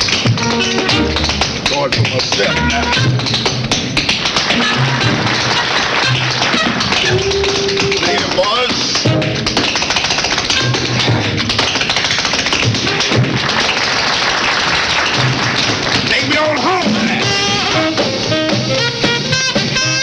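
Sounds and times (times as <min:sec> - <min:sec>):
tap shoes tapping on stage: 0:00.0 - 0:20.0
band playing held notes: 0:15.1 - 0:20.0.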